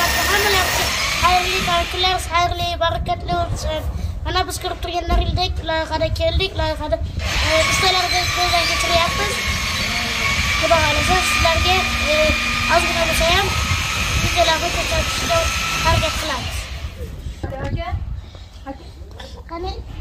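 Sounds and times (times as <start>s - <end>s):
child's voice performing phrases: 0.0s - 9.5s, 10.6s - 13.6s, 14.2s - 16.7s, 18.6s - 19.9s
steady high tone: 7.4s - 17.0s.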